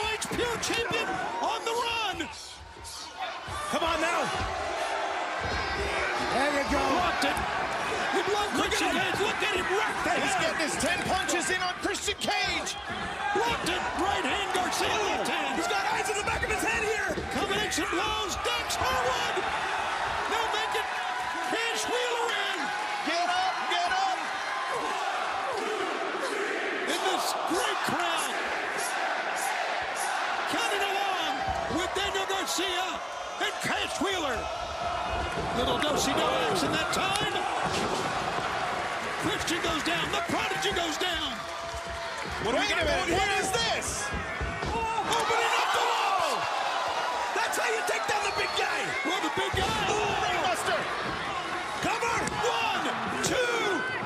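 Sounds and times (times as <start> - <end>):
crowd roar: 0.0 - 54.0
voices shouting: 0.0 - 54.0.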